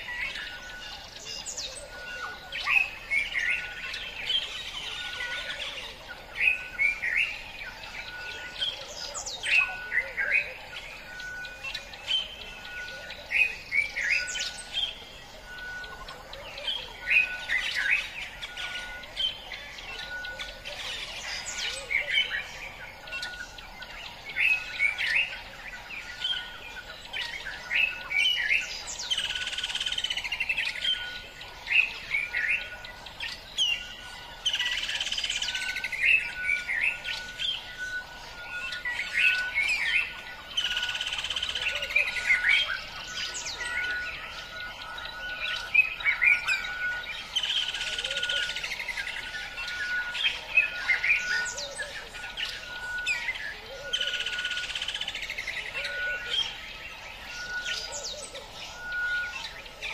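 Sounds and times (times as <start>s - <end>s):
wild birds chirping and calling: 0.0s - 59.9s.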